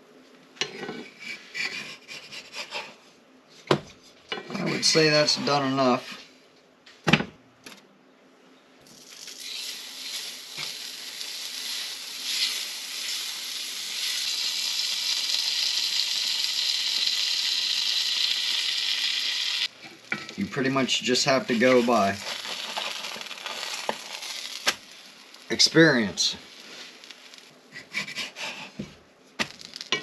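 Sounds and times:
butter sizzling in a skillet: 0:09.0 - 0:27.5.

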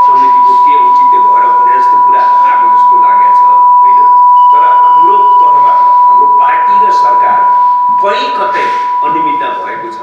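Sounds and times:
man speaking into a microphone: 0:00.0 - 0:10.0
steady high beep tone: 0:00.0 - 0:10.0.

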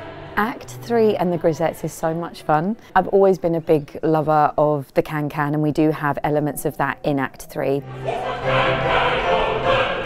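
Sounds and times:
choir singing with music: 0:00.0 - 0:02.5, 0:07.8 - 0:10.0.

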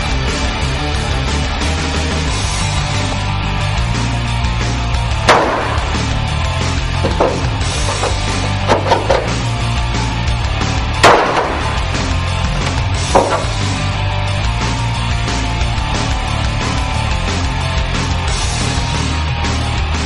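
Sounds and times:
heavy metal music: 0:00.0 - 0:20.0.

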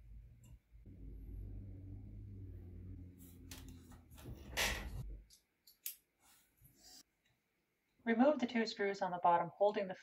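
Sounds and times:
low steady hum: 0:00.0 - 0:05.4.

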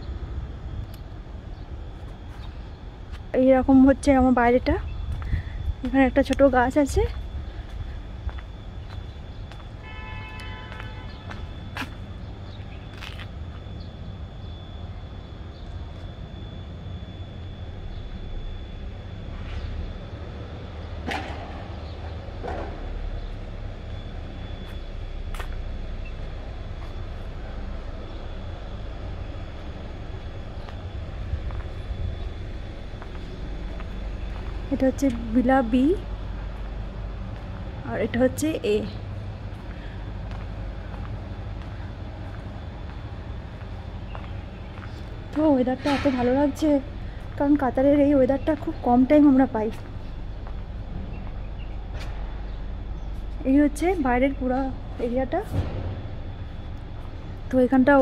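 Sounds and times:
faint high whine: 0:00.0 - 0:58.0
low street rumble: 0:00.0 - 0:58.0
steady low hum: 0:00.0 - 0:58.0.

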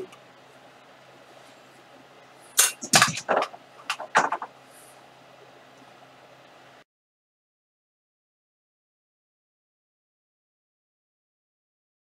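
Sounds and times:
faint electrical hum: 0:00.0 - 0:06.8
knocks and clatters: 0:02.6 - 0:04.5.

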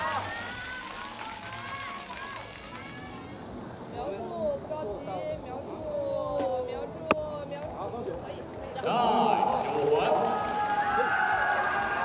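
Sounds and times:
distant voices talking: 0:00.0 - 0:12.0
outdoor background noise: 0:00.0 - 0:12.0.

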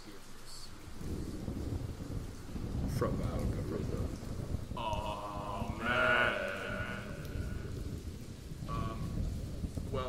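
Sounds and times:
thunder rumbling: 0:00.3 - 0:10.0.

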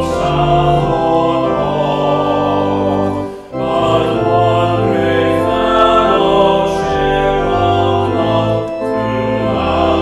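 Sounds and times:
church organ playing chords: 0:00.0 - 0:10.0.

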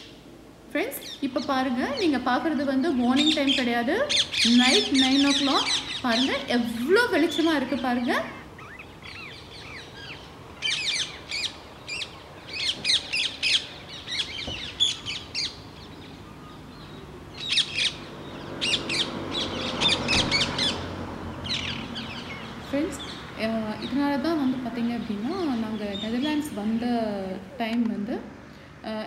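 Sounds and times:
songbirds chirping: 0:00.0 - 0:29.0.

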